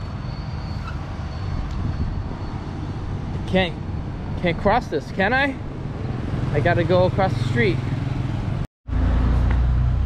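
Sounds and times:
road traffic rumble: 0:00.0 - 0:10.0
motorbike passing: 0:01.6 - 0:10.0.

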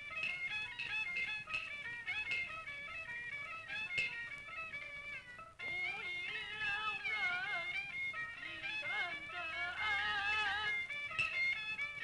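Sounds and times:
sliding opera melody: 0:00.0 - 0:12.0.

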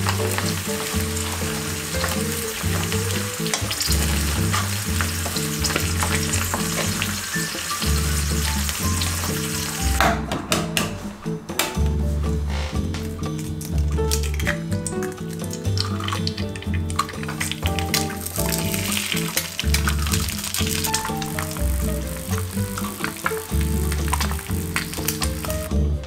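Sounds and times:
eggs sizzling in oil: 0:00.0 - 0:10.0, 0:12.6 - 0:26.0
background music: 0:00.0 - 0:26.0.

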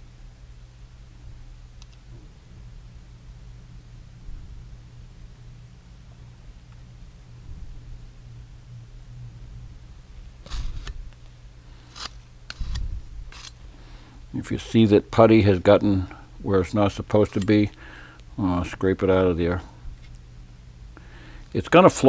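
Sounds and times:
low room hum: 0:00.0 - 0:22.0
putty knife scraping a can: 0:11.9 - 0:13.6.

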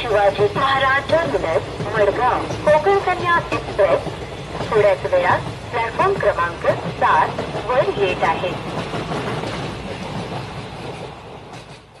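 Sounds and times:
train rumbling on rails: 0:00.0 - 0:12.0.

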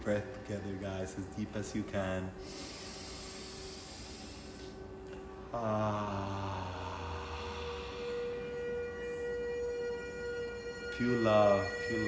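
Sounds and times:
meditation drone: 0:00.0 - 0:12.0
breathy exhale: 0:02.4 - 0:04.8, 0:05.7 - 0:08.5.

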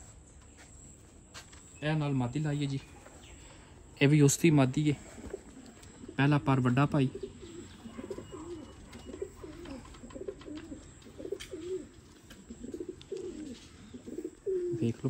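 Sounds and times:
pigeons cooing: 0:03.0 - 0:15.0.

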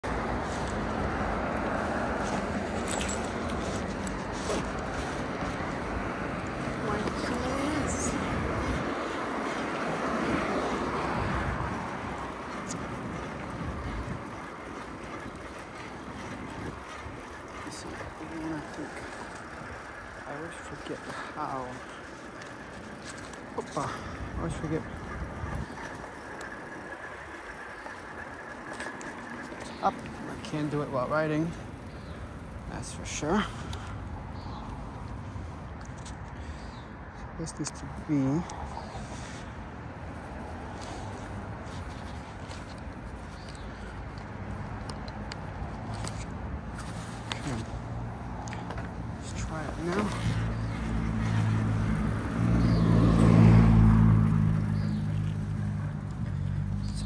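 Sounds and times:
car passing: 0:00.0 - 0:57.0
wind and road noise: 0:00.0 - 0:57.0.

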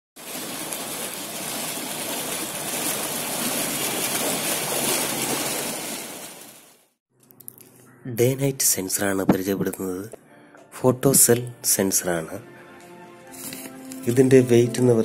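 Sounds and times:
fountain water gushing and splashing: 0:00.2 - 0:06.9.

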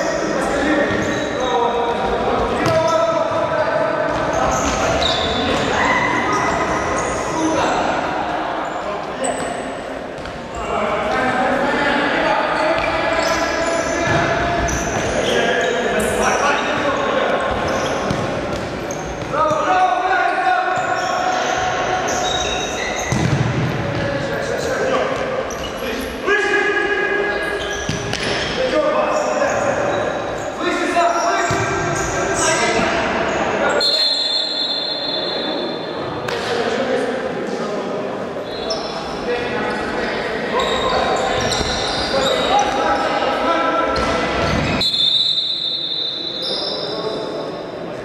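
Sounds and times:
shouting voices echoing: 0:00.0 - 0:18.2, 0:18.8 - 0:23.1, 0:23.8 - 0:36.0.

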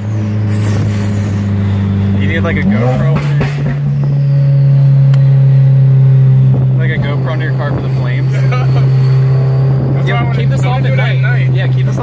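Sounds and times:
car engine droning inside cabin: 0:00.0 - 0:12.0.

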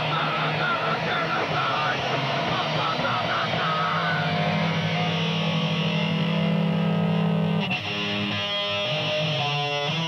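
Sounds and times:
punk band playing loud: 0:00.0 - 0:10.0.

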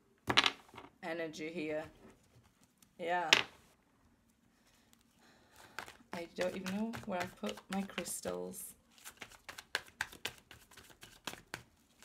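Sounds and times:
playing cards being shuffled: 0:05.6 - 0:12.0.

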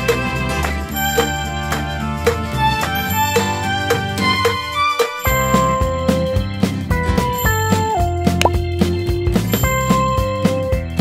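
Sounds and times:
children's background music: 0:00.0 - 0:11.0
short pop sound effect: 0:08.4 - 0:08.7.

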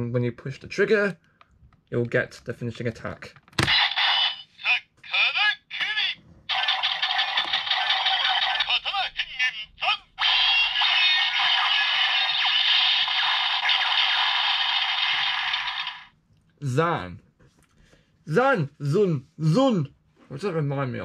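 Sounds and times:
toy electronic sound effects: 0:03.6 - 0:04.8, 0:06.5 - 0:09.0, 0:10.2 - 0:16.1.

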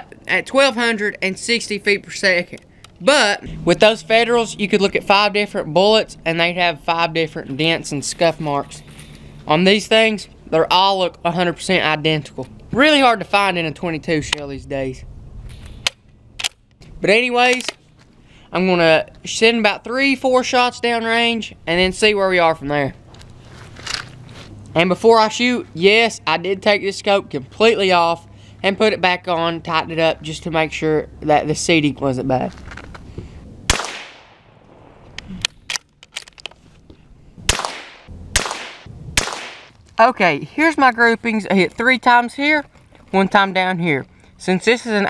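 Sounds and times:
low rumble: 0:03.4 - 0:08.0, 0:37.1 - 0:40.0
sharp clicks handling a rifle: 0:15.6 - 0:16.8, 0:17.4 - 0:18.1
rifle shots with echo: 0:33.7 - 0:34.6, 0:37.5 - 0:39.7.

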